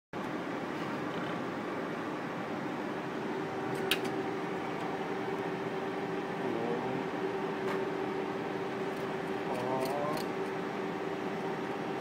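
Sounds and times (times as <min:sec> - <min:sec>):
mechanical hum of fans: 0:00.2 - 0:12.0.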